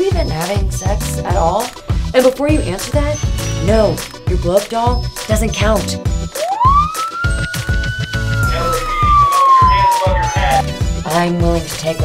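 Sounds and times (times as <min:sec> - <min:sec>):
background music with beat: 0:00.0 - 0:12.0
falling whistle: 0:06.3 - 0:10.7.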